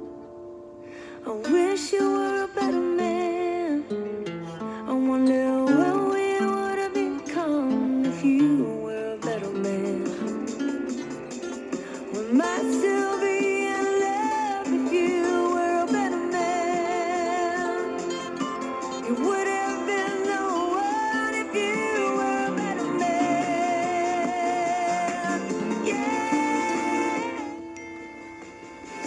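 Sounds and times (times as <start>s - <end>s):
acoustic guitar: 0.0s - 29.0s
person singing wordless melody: 0.0s - 29.0s.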